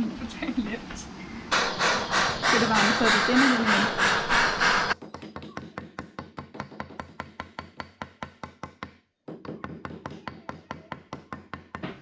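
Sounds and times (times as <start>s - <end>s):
gas torch flame hissing: 1.5s - 5.0s.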